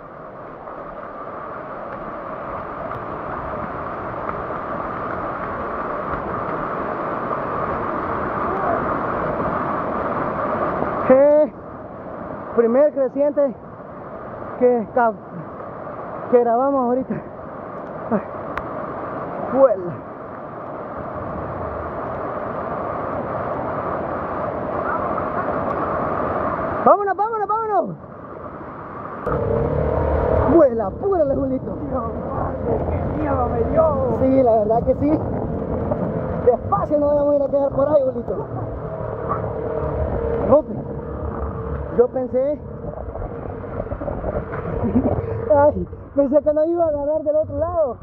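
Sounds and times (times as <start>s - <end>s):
floodwater rushing: 0.0s - 48.0s.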